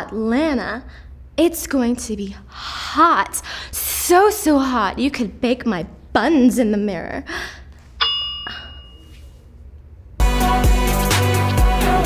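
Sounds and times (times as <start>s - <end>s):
metallic bell ding: 8.0s - 9.4s.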